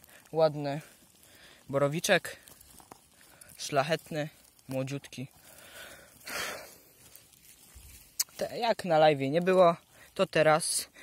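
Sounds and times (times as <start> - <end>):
rustle of moss and pine needles: 0.0 - 11.0.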